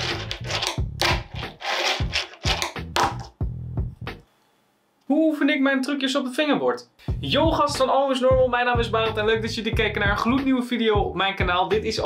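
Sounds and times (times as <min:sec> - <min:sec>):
fingerboard wheels scraping wood: 0:00.0 - 0:03.3.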